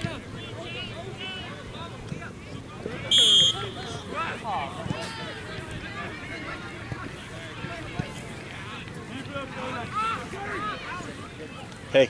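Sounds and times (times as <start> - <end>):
referee's whistle blast: 3.1 - 4.1
faint shouting: 9.6 - 11.2.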